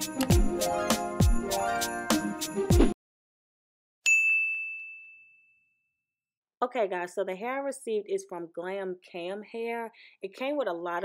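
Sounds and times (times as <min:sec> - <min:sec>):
bell ding: 0:04.1 - 0:05.8.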